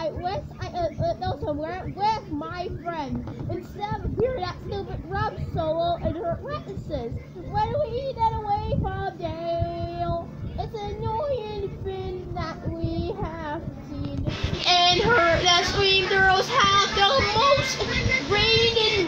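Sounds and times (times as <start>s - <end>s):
child singing with music: 0.0s - 19.0s.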